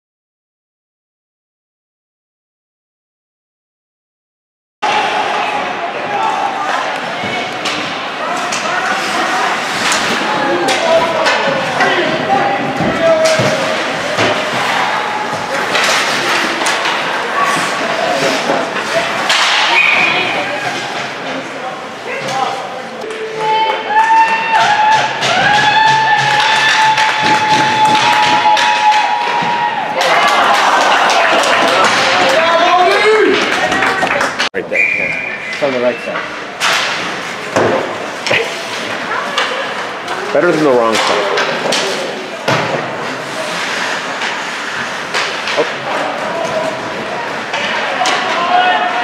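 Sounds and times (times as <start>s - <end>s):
indistinct voices: 4.8s - 49.0s
hockey sticks and puck knocking: 7.2s - 19.8s, 24.6s - 30.2s.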